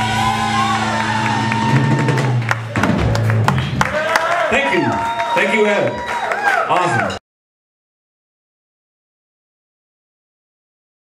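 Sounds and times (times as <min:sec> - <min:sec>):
live rock band playing: 0:00.0 - 0:04.4.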